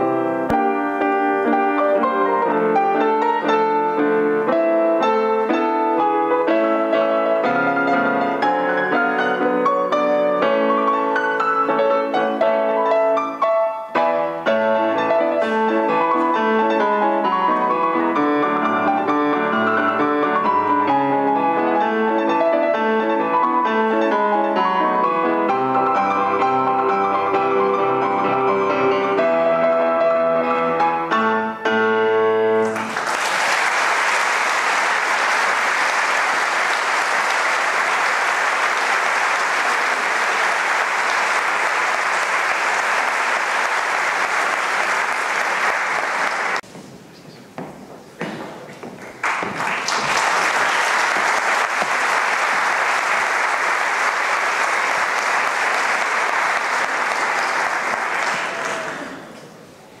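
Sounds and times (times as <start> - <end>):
audience applause: 32.6 - 46.7, 49.0 - 59.6.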